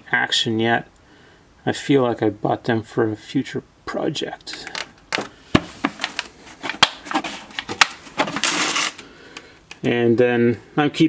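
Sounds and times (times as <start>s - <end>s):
plastic case scraping on concrete: 5.7s - 9.0s.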